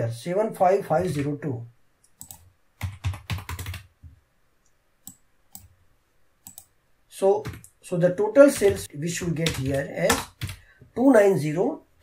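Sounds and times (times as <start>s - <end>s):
computer keyboard typing: 1.0s - 1.3s, 2.1s - 3.9s, 6.4s - 6.7s, 7.4s - 7.8s, 8.4s - 10.6s.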